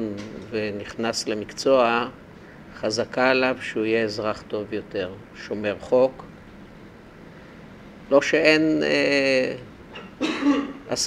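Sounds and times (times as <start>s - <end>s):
man clearing throat: 10.0s - 10.9s.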